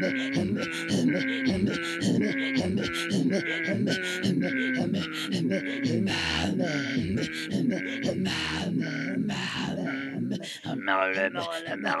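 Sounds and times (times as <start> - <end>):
women throat singing: 0.0 - 12.0.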